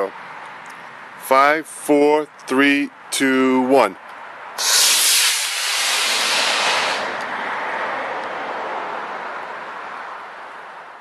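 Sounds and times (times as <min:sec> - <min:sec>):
rocket motor rushing hiss: 0:04.6 - 0:07.3.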